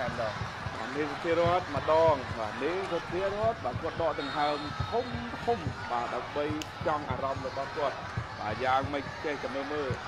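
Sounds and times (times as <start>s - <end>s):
commentator talking: 0.0s - 10.0s.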